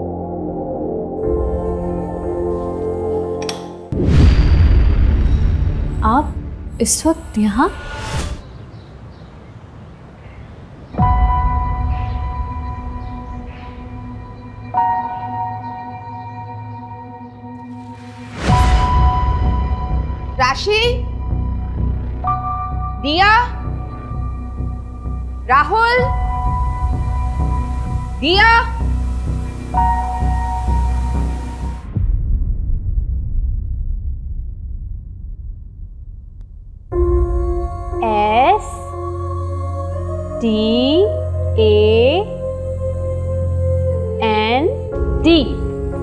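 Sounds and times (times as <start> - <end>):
high music: 0.0 - 4.5
deep rumble: 3.9 - 8.5, 18.3 - 46.0
sudden low hit: 3.9 - 8.5, 31.8 - 37.8.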